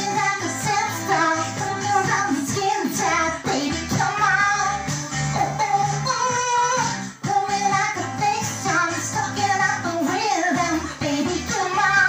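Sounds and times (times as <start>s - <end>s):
pop backing track with bass beat: 0.0s - 12.0s
woman singing into a microphone: 0.0s - 12.0s.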